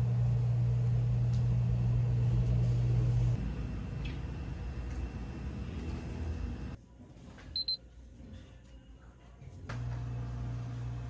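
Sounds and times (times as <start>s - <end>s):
steady low hum: 0.0s - 6.9s
high-pitched alarm beeps: 7.6s - 7.8s.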